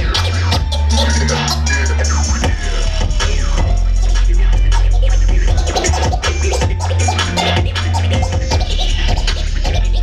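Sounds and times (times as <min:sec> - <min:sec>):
beat with heavy bass: 0:00.0 - 0:10.0
turntable scratching: 0:00.0 - 0:10.0.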